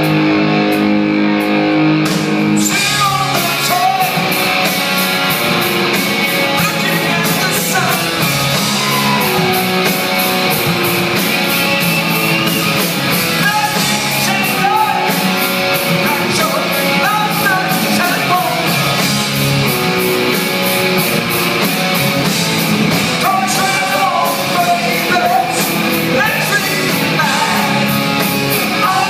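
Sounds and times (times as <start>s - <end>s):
rock band playing live: 0.0s - 29.0s
male lead vocal: 2.6s - 4.7s, 6.3s - 9.6s, 13.3s - 19.1s, 23.1s - 29.0s.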